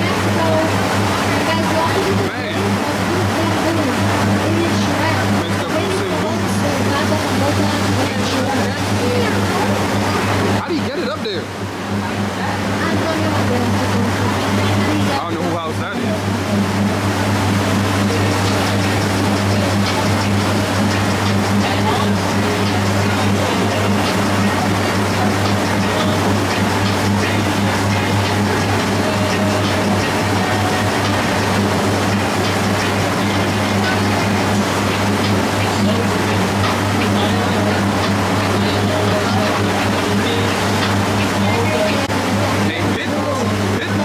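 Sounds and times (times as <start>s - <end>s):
boat engine droning: 0.0s - 44.0s.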